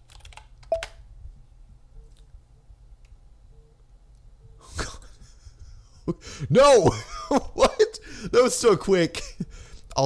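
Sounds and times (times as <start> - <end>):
man laughing through the nose: 4.6 - 8.3.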